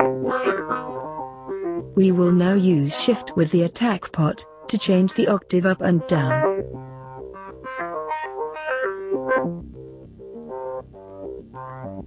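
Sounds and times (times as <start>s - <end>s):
synthesizer plucked notes: 0.0s - 12.0s.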